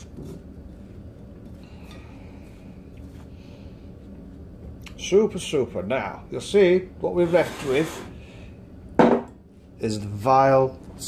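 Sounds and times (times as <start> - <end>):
soft rustling in flour: 0.0 - 8.2
low steady hum: 0.0 - 11.0.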